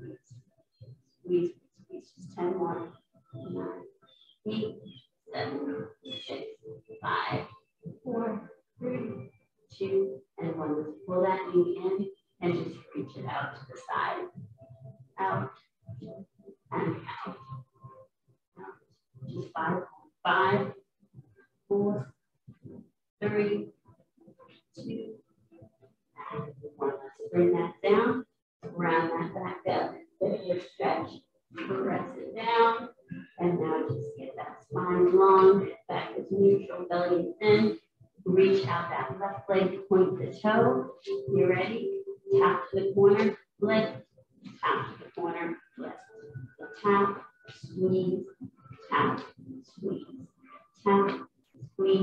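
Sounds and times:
person talking: 2.2s - 2.8s, 4.5s - 4.7s, 5.4s - 6.4s, 7.0s - 7.4s, 8.1s - 9.2s, 9.8s - 14.2s, 15.2s - 15.4s, 16.7s - 17.4s, 19.3s - 20.7s, 23.2s - 23.6s, 26.2s - 37.7s, 38.3s - 44.0s, 44.6s - 46.0s, 46.6s - 48.2s, 48.9s - 49.2s, 50.9s - 51.2s, 51.8s - 52.0s.

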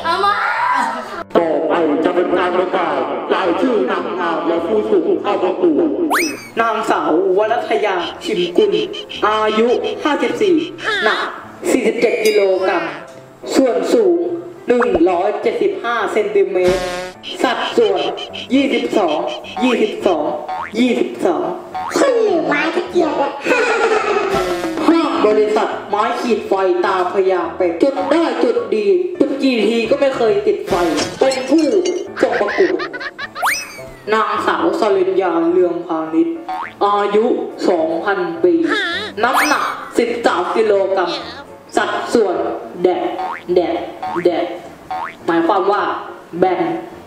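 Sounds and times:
background music: 0.0s - 47.0s
comic boing sound effect: 6.1s - 6.6s, 19.3s - 20.8s, 21.8s - 22.6s, 24.3s - 24.8s, 32.0s - 34.1s, 36.5s - 36.8s, 38.7s - 40.0s, 43.2s - 45.3s
girl speaking: 38.7s - 40.0s, 41.0s - 41.5s.

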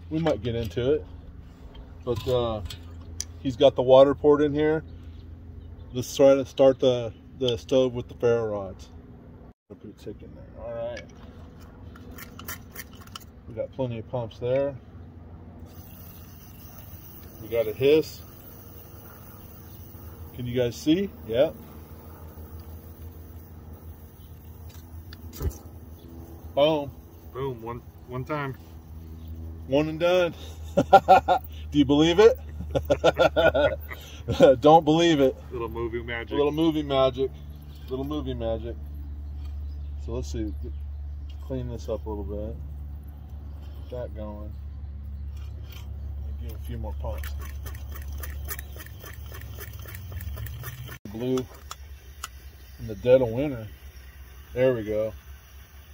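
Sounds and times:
liquid-fuel stove hissing: 15.6s - 28.8s, 48.7s - 55.9s
squeaky pump strokes: 15.6s - 30.6s, 45.2s - 55.9s.

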